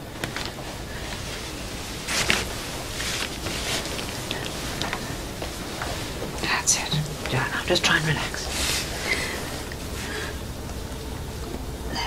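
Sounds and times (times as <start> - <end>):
woman breathing heavily: 0.0 - 7.4, 8.4 - 10.7.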